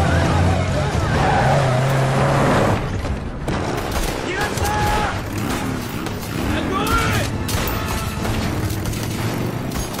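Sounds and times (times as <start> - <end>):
truck engine running hard: 0.0 - 2.9.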